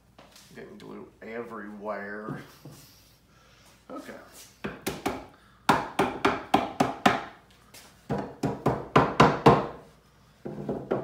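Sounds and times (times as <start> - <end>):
mallet knocking wooden boards: 4.7 - 7.4, 8.1 - 9.8.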